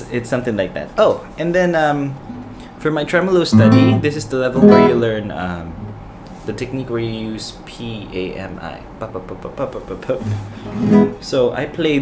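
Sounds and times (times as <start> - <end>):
classical guitar tremolo: 2.2 - 2.7, 3.5 - 5.2, 10.3 - 11.2.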